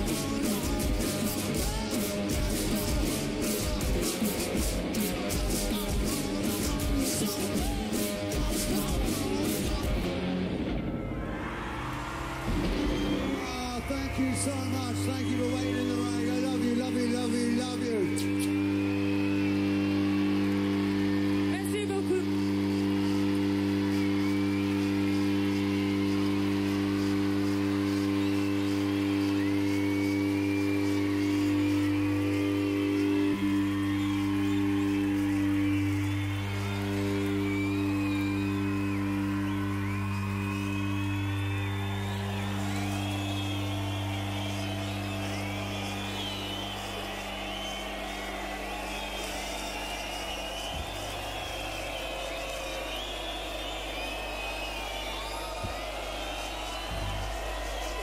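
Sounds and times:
amplifier drone: 0.0 - 55.4
audience whistles and cheers: 0.0 - 58.0.

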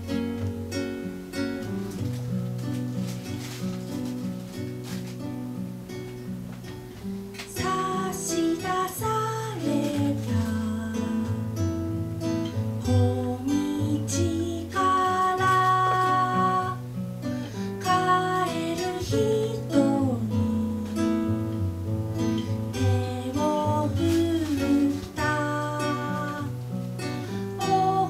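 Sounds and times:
classical guitar strumming: 0.0 - 28.0
woman singing: 7.4 - 11.7, 12.8 - 17.0, 17.6 - 28.0.

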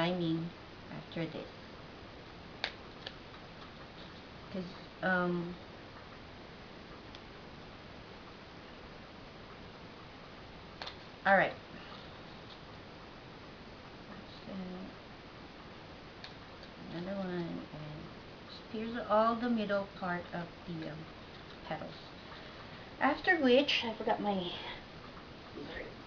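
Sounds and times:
background hiss: 0.0 - 26.0.

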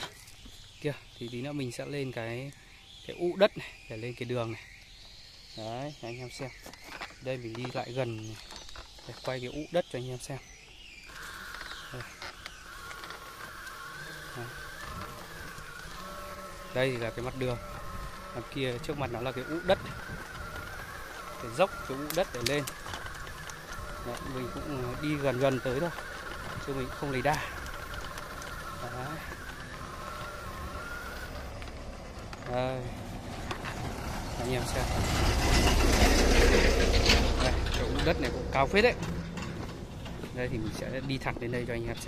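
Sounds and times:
electric motor whining: 0.0 - 42.0
tyres rumbling on dirt: 0.0 - 42.0
wheels clicking on grit: 0.0 - 42.0.

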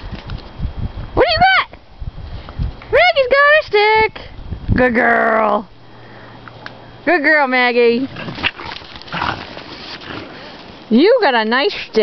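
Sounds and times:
dog breathing and snuffling: 8.1 - 10.8.

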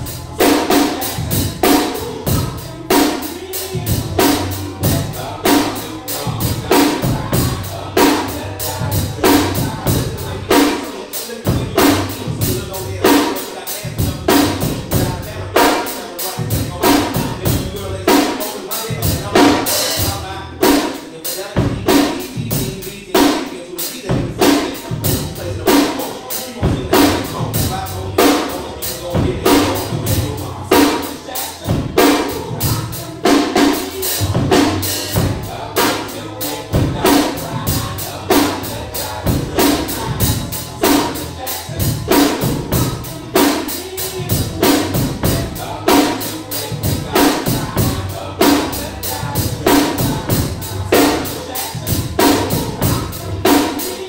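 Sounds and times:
drum kit playing a groove: 0.0 - 54.0
recorded hip-hop track: 0.0 - 54.0.

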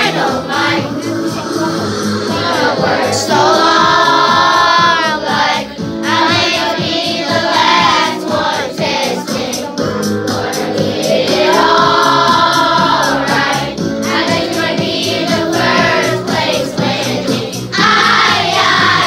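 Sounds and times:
backing track with steady beat: 0.0 - 19.0
children singing in unison: 0.0 - 19.0.

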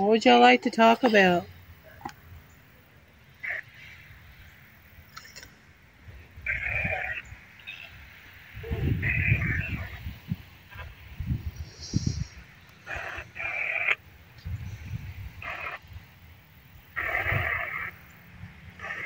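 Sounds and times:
low rumbles on microphone: 8.6 - 12.4.

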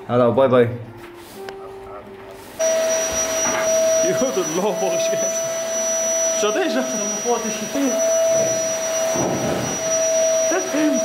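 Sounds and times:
vacuum cleaner whine: 2.4 - 11.0
vacuum nozzle on carpet: 2.6 - 11.0.

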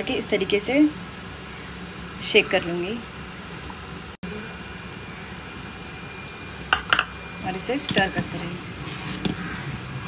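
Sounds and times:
kitchen background hum: 0.0 - 10.0.

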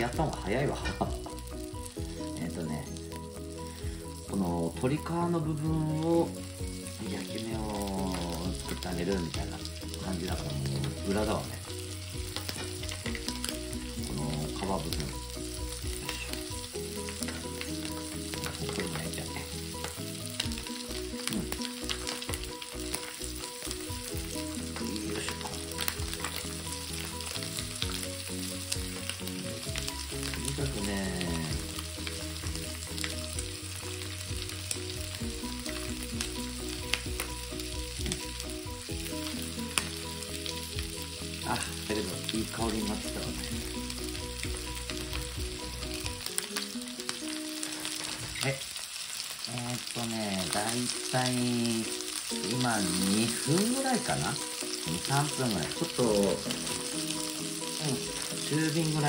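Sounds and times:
chicken sizzling in a frying pan: 0.0 - 59.0.

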